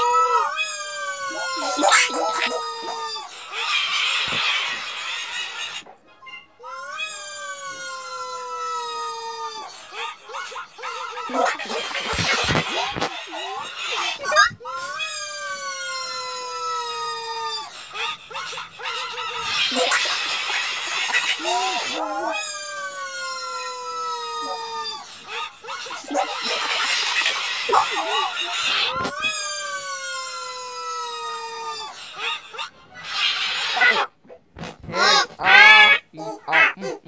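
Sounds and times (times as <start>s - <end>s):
long wailing cry: 0.0s - 3.5s, 6.6s - 11.8s, 13.9s - 20.0s, 21.3s - 26.6s, 27.7s - 32.7s
short wavering yelps: 13.9s - 17.0s, 35.0s - 37.0s.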